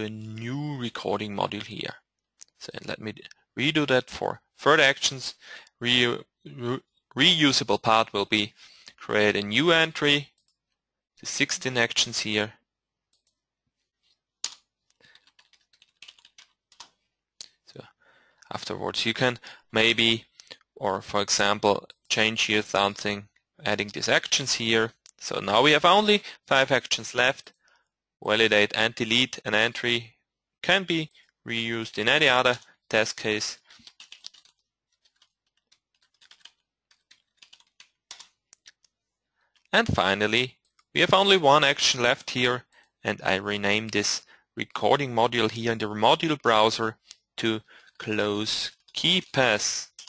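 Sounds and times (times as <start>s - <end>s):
typing on computer keyboard: 14.5s - 17.0s, 33.6s - 38.9s.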